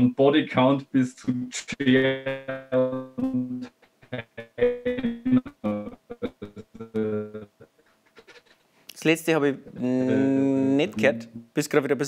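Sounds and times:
man's garbled voice over call: 0:01.6 - 0:03.0, 0:09.7 - 0:11.4.

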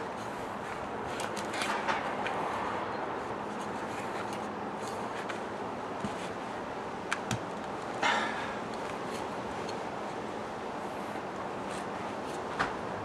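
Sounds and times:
outdoor background hum: 0:00.0 - 0:13.0.

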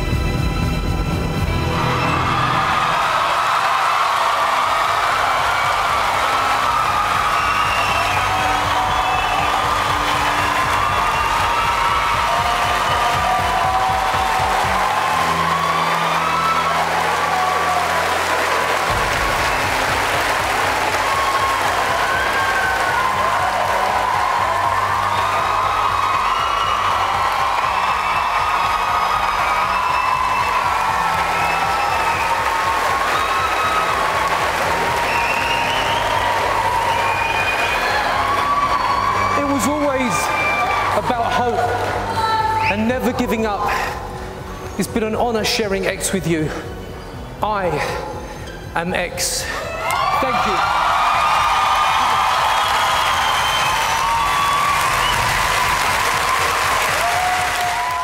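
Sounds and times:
audience applauding and cheering: 0:00.0 - 0:48.5, 0:49.2 - 0:58.0.

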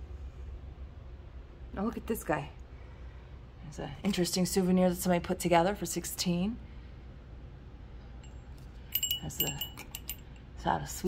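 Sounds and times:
small metal bell jingling: 0:08.2 - 0:10.3.

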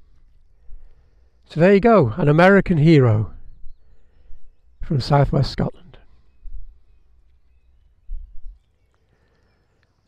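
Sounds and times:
faint birdsong: 0:00.0 - 0:10.0
wind buffeting microphone: 0:02.6 - 0:07.3, 0:08.0 - 0:08.6.

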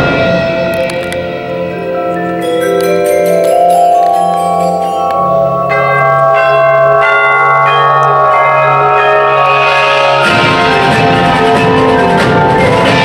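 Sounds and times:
mallet percussion chords: 0:00.1 - 0:13.0.

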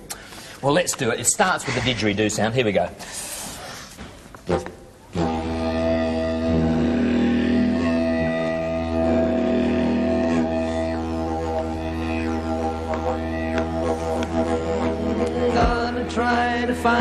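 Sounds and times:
didgeridoo drone: 0:05.2 - 0:17.0.

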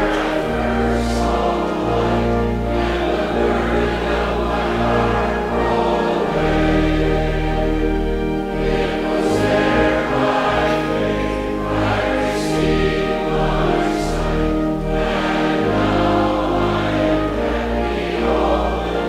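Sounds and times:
congregation singing a hymn: 0:00.0 - 0:19.0
instrumental accompaniment: 0:00.0 - 0:19.0.

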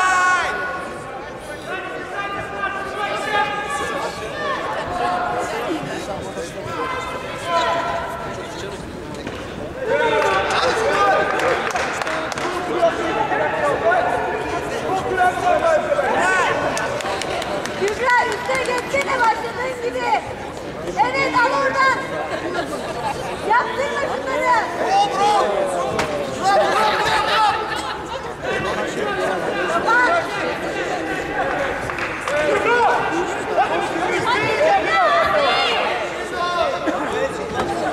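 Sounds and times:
voices talking and calling out: 0:00.0 - 0:37.9
people shouting and calling: 0:23.5 - 0:37.9.

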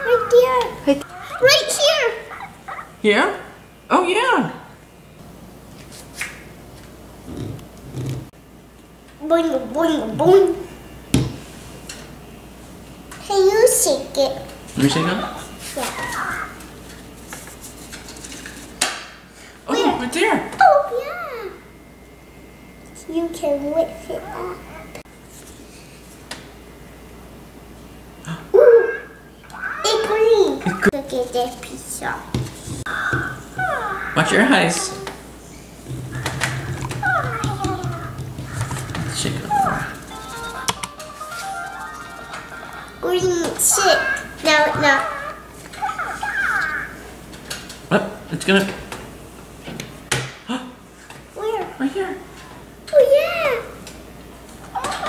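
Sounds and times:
toy creature chirping calls: 0:44.0 - 0:47.0.

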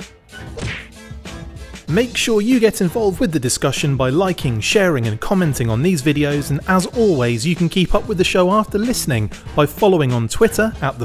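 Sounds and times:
music: 0:00.0 - 0:11.0
sharp whip-like hits: 0:00.5 - 0:01.1.

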